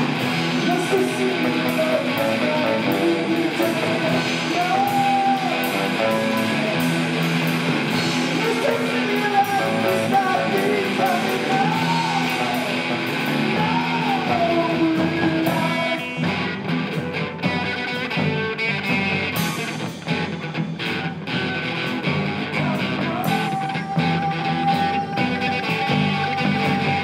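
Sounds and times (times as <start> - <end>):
bending guitar lead line: 0.0 - 27.0
live rock band playing: 0.0 - 27.0.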